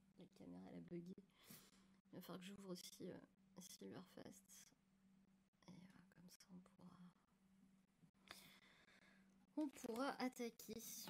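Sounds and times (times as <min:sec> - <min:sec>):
steady low hum: 0:00.0 - 0:09.6.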